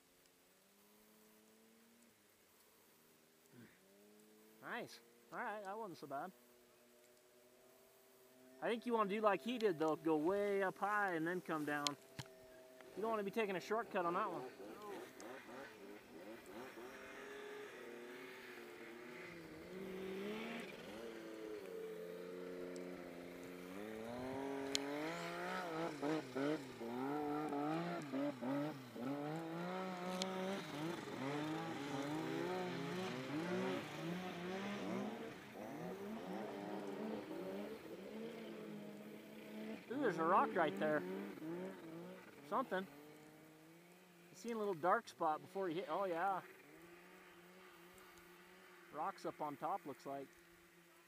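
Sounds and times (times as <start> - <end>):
snowmobile engine revving: 8.4 - 12.0, 12.8 - 51.0.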